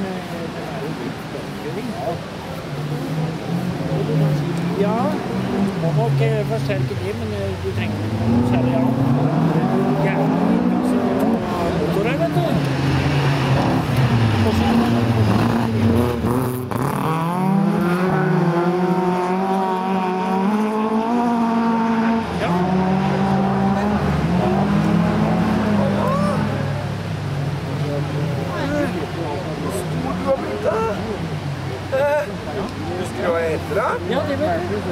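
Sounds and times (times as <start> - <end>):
race car engines revving: 0.0 - 34.9.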